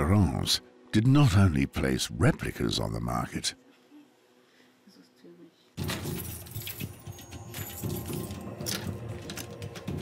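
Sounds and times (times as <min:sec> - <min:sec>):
metal keys jangling: 0:05.8 - 0:10.0.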